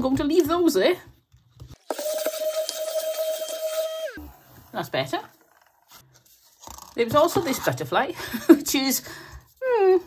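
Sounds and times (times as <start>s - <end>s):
handheld vacuum cleaner whine: 1.8s - 4.8s
vacuum motor spinning down: 1.9s - 4.8s.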